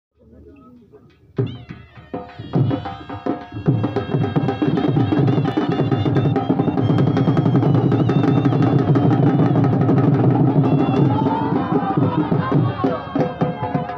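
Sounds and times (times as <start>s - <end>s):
fast loud drumming: 1.2s - 13.9s
pitched music: 1.4s - 13.9s.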